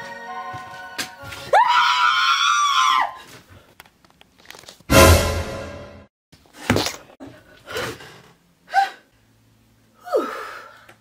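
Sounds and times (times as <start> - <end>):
music: 0.0 - 1.5, 4.9 - 6.1
woman screaming: 1.5 - 3.2.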